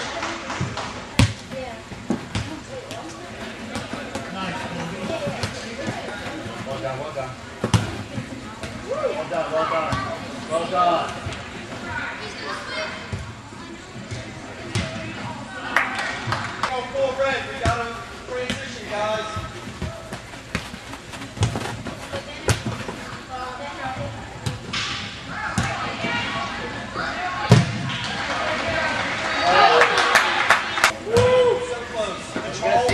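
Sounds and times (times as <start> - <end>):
ball kicked and bouncing: 0.6 - 6.8, 7.6 - 8.8, 17.6 - 23.0.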